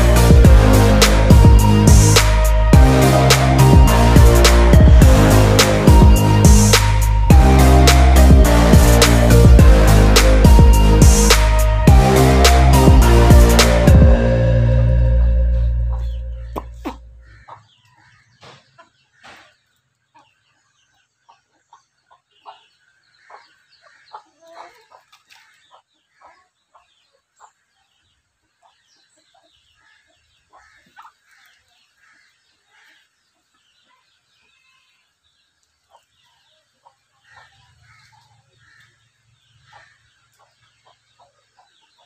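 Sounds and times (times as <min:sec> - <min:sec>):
music: 0:00.0 - 0:17.0
hens clucking: 0:15.9 - 0:19.5.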